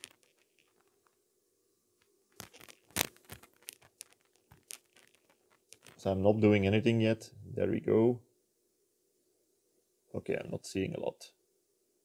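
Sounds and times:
small clicks and rustles of handling: 0.0 - 1.2, 2.0 - 6.1.

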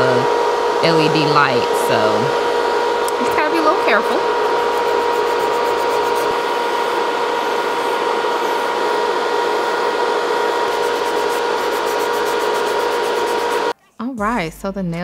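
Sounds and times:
electric nail drill whirring: 0.0 - 13.7
dust collector fan humming: 0.0 - 13.8.

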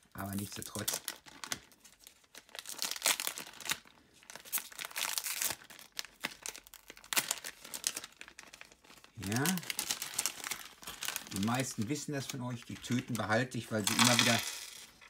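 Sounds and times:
foil bag tearing and crinkling: 0.2 - 14.4.

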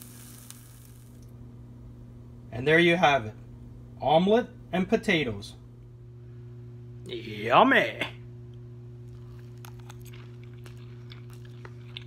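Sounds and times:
omelet sizzling in frying pan: 0.0 - 1.2
steady low hum: 0.0 - 12.0.

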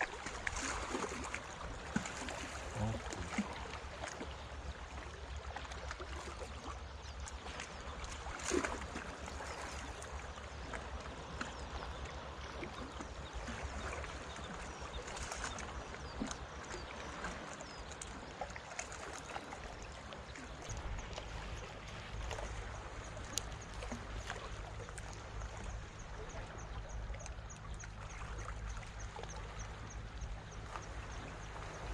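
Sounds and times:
water lapping among rocks: 0.0 - 31.9
wind rumble on microphone: 20.4 - 31.9.

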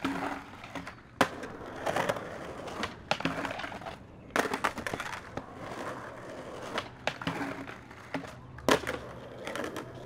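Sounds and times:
skateboard clattering on asphalt: 0.0 - 10.0
skateboard grinding on ledge: 0.0 - 10.0.

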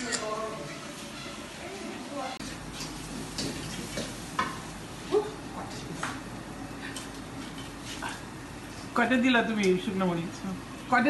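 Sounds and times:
food frying in a wok: 2.4 - 5.1.

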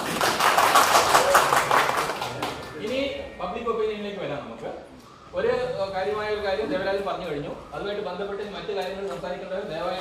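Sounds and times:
audience applauding: 0.0 - 2.8.

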